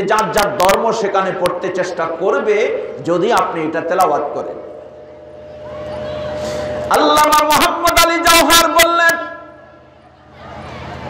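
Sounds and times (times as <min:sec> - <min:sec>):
man speaking over public address: 0:00.0 - 0:04.7, 0:06.9 - 0:09.6.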